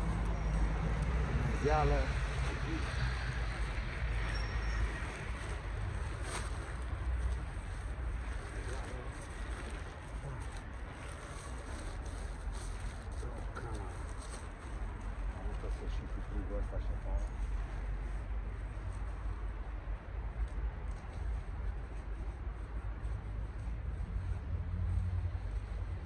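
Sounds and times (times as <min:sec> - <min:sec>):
tent fabric rustling and crackling: 0:00.1 - 0:16.4.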